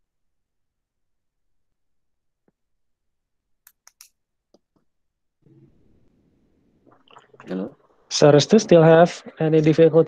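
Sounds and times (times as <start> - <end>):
faint sharp clicks: 3.6 - 4.8.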